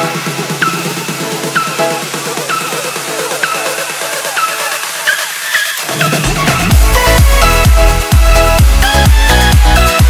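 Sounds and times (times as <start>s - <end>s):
electronic dance music synth: 0.0s - 10.0s.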